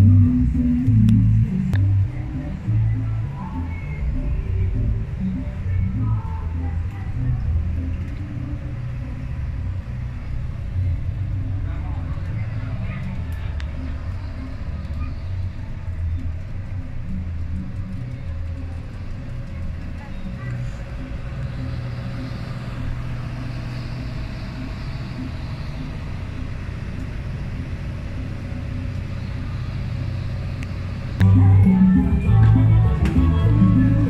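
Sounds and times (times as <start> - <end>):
ship engines rumbling: 0.0 - 34.0
steady hum: 0.0 - 34.0.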